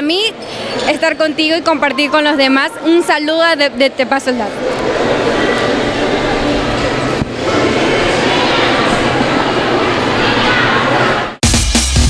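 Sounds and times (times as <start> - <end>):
dense crowd chatter: 0.0 - 11.4.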